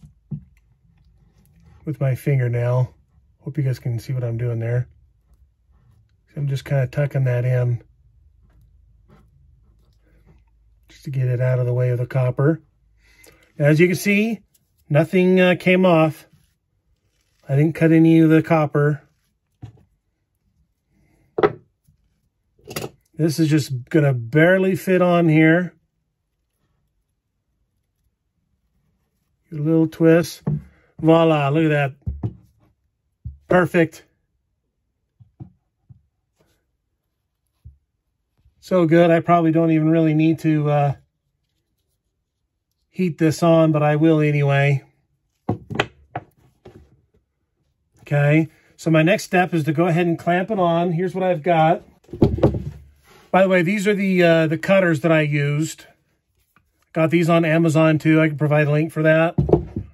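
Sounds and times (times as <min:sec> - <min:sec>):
cable knocking on wooden surface: 0:21.4 - 0:21.6, 0:32.0 - 0:32.5, 0:45.5 - 0:46.8, 0:52.0 - 0:52.9, 0:59.4 - 0:59.9.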